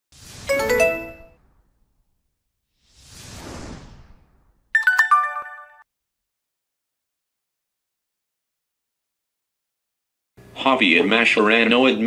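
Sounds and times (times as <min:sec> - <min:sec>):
bright bell-like chime: 0:00.5 - 0:01.4, 0:04.8 - 0:05.8.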